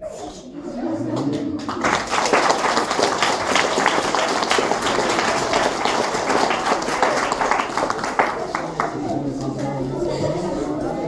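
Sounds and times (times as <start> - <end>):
audience applauding: 1.2 - 9.1.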